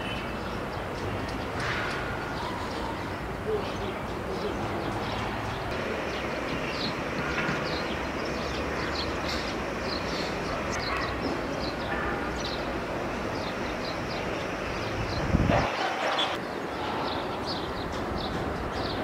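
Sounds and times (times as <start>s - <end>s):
distant traffic hum: 0.0s - 19.0s
small birds chirping: 0.0s - 19.0s.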